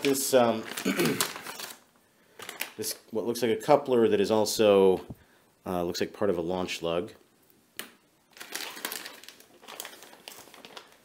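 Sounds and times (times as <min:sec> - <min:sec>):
plastic bag crinkling: 0:00.0 - 0:03.0, 0:08.3 - 0:11.0.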